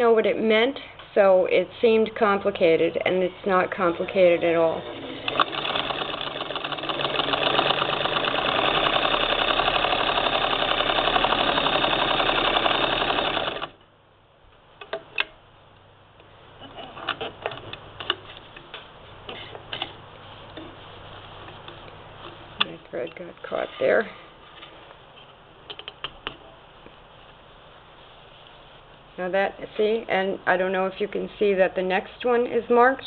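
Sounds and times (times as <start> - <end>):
sewing machine running: 4.6 - 13.8
fabric rustling: 18.2 - 25.5, 26.4 - 30.0.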